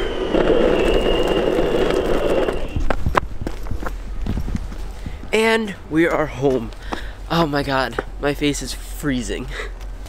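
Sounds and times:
high motor whine: 0:00.0 - 0:03.2
skateboard wheels rolling on asphalt: 0:00.0 - 0:05.3.

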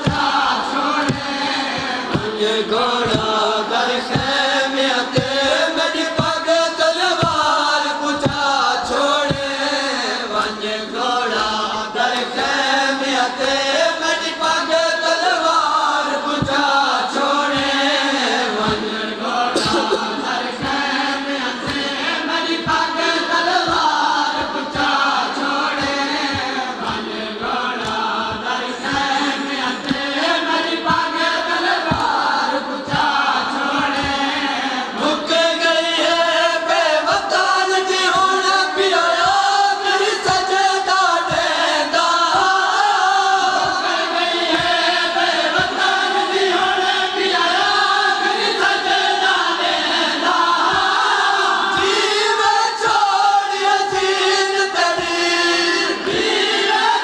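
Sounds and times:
men chanting a lament: 0:00.0 - 0:57.0.

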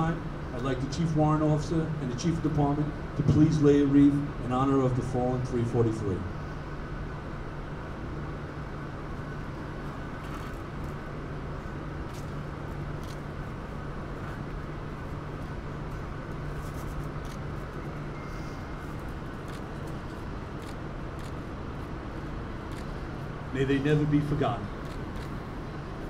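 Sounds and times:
constant low street hum: 0:00.0 - 0:26.0.

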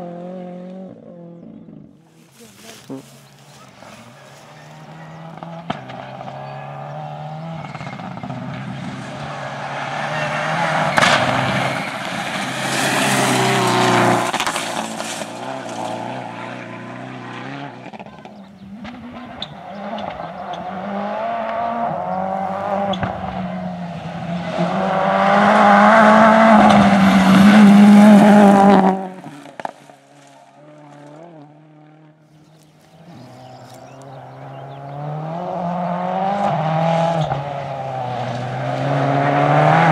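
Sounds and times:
distant car engine: 0:00.0 - 0:39.9
rally car engine passing: 0:00.0 - 0:39.9.

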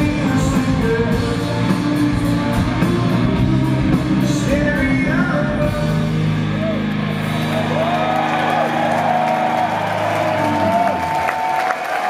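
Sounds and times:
crowd cheering and applauding: 0:06.3 - 0:12.0.

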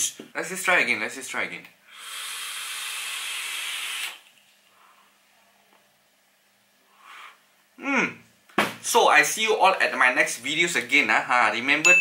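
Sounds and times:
vape atomizer hissing: 0:01.9 - 0:04.3.

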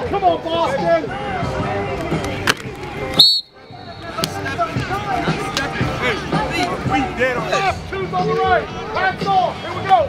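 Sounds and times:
short high whistle blast: 0:03.2 - 0:03.6.

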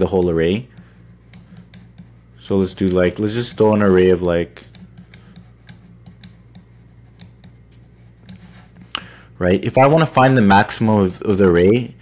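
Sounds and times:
low steady hum: 0:00.0 - 0:12.0
computer mouse clicks: 0:00.2 - 0:02.1, 0:04.6 - 0:07.6.

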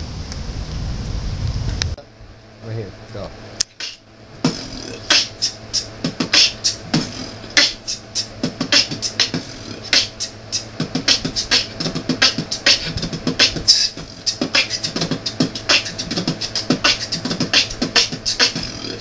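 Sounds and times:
person beatboxing: 0:03.6 - 0:19.0.

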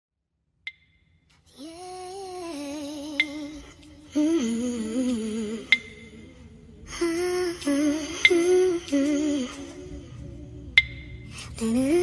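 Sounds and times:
person humming melody: 0:01.5 - 0:12.0.

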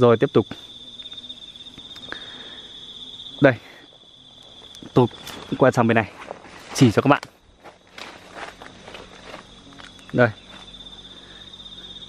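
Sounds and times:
high-pitched insect trill: 0:00.0 - 0:12.0.

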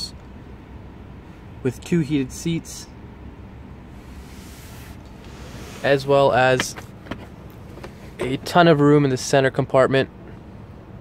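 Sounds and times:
vehicle cabin background noise: 0:00.0 - 0:11.0.

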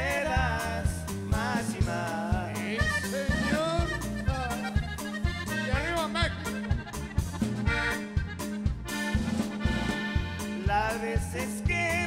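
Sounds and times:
accordion lead melody: 0:00.0 - 0:12.0
bouncing bass and drum beat: 0:00.0 - 0:12.0.

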